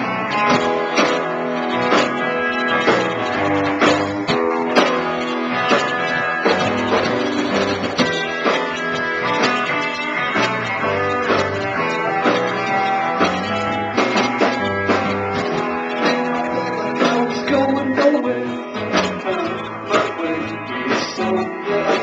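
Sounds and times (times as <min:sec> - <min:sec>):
bass guitar notes: 0:00.0 - 0:22.0
electric guitar strumming chords: 0:00.0 - 0:22.0.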